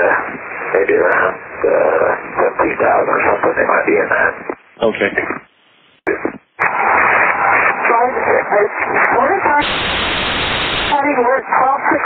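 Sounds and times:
garbled radio voice: 0.0 - 5.5
radio static hiss: 0.0 - 12.0.

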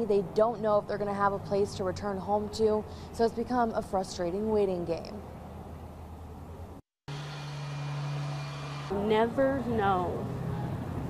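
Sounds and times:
steady machine drone: 7.1 - 11.0.

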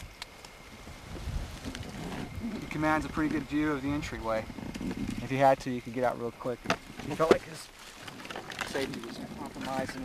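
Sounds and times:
faint clicks and rustles: 0.0 - 10.0
low wind rumble: 0.0 - 10.0
microphone handling noise: 0.9 - 5.4.

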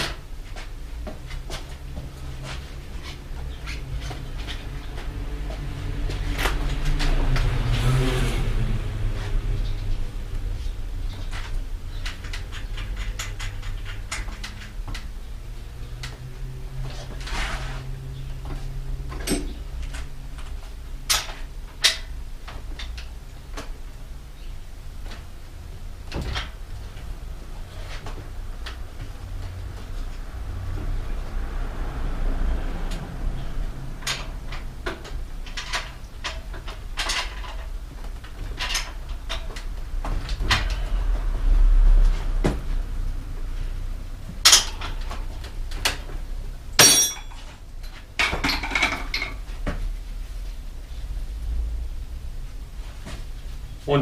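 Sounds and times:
bicycle parts clicking and rubbing: 9.3 - 23.8.

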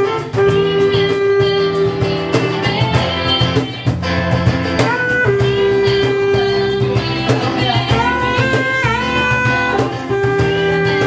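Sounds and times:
bass line: 0.0 - 11.0
held melody notes: 0.0 - 11.0
strummed guitar: 0.0 - 11.0.

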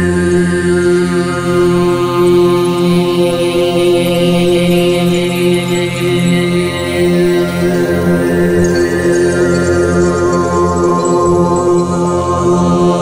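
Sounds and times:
overtone singing drone: 0.0 - 13.0.

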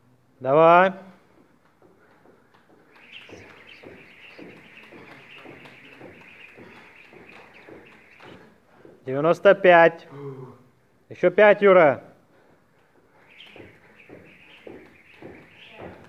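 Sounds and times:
rope and feet tapping floor: 1.2 - 9.2, 12.7 - 16.0
jump rope whirring: 1.5 - 8.6.

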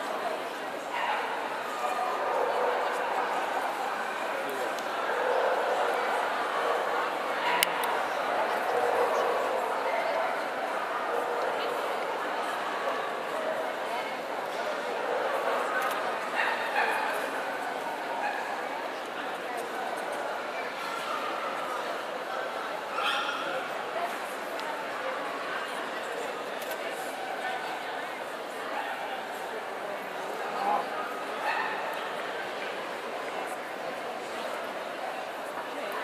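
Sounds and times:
crowd chatter: 0.0 - 36.0.

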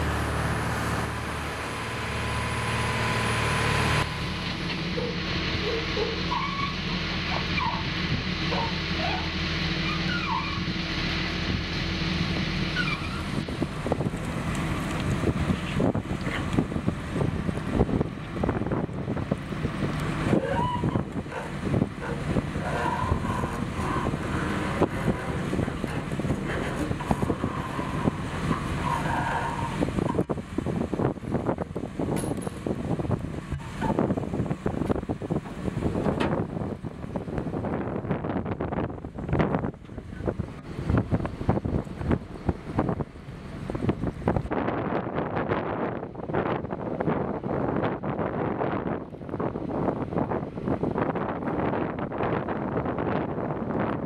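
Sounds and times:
water noise: 0.0 - 45.7
boat engine running: 0.0 - 46.8
wind: 0.0 - 54.0
knocks and clatter of gear: 32.1 - 32.7.

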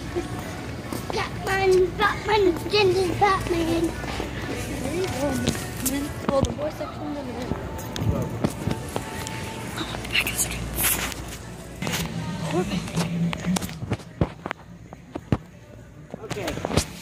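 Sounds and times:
indistinct voices: 0.0 - 17.0.

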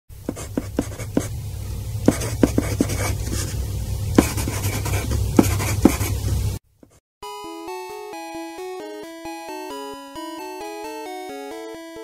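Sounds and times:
steady low hum: 0.1 - 6.6
pen scratching on paper: 0.3 - 1.3, 2.1 - 3.6, 4.2 - 6.2.

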